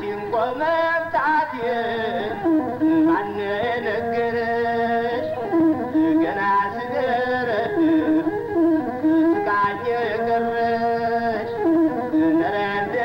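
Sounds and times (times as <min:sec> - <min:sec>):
bowed one-string fiddle: 0:00.0 - 0:13.0
person singing: 0:00.0 - 0:13.0.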